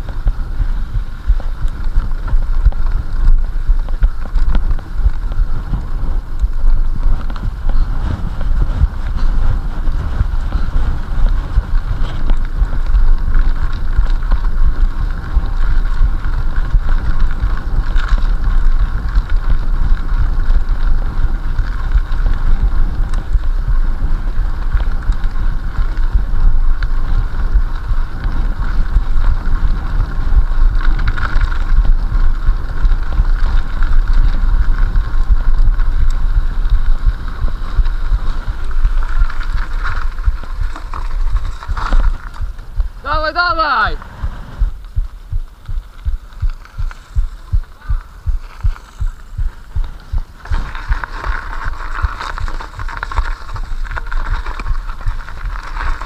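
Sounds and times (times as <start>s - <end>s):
bike rattling: 0.0s - 56.0s
wind buffeting microphone: 0.0s - 56.0s
regular thumping: 31.9s - 55.4s.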